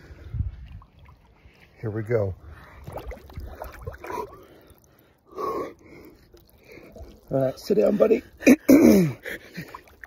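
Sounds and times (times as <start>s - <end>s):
man breathing heavily and grunting: 4.0s - 7.2s.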